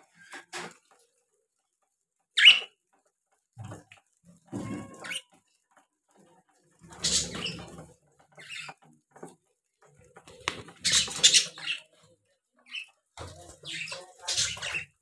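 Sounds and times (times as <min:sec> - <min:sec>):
budgerigars chirping: 0:10.8 - 0:11.9.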